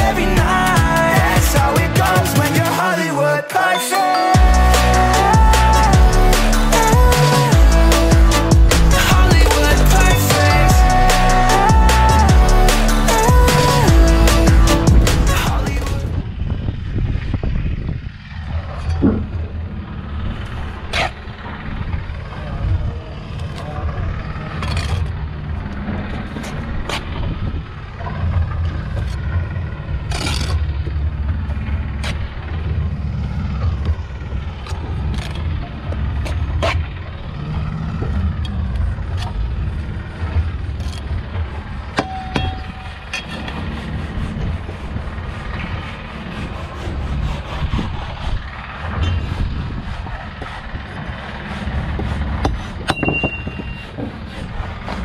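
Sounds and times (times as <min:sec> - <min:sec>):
steady low rumble: 0:00.0 - 0:02.9, 0:04.4 - 0:55.0
trowel scraping mortar: 0:24.5 - 0:25.1, 0:30.0 - 0:30.7, 0:42.8 - 0:55.0
trowel tapping bricks: 0:51.9 - 0:54.1.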